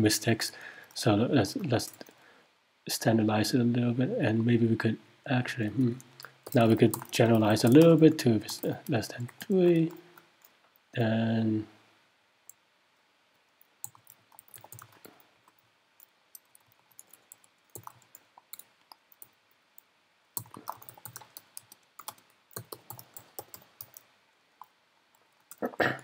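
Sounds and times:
typing on computer keyboard: 0:06.4 - 0:10.0, 0:13.8 - 0:19.4, 0:20.4 - 0:24.0.

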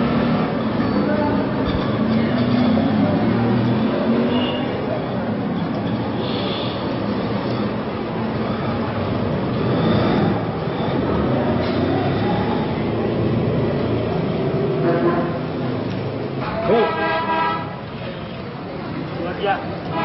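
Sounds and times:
street ambience rumble: 0:00.0 - 0:20.0.

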